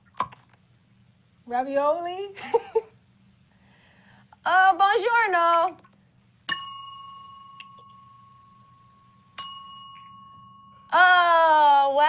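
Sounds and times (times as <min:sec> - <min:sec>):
desk service bell ding: 0:06.5 - 0:11.0.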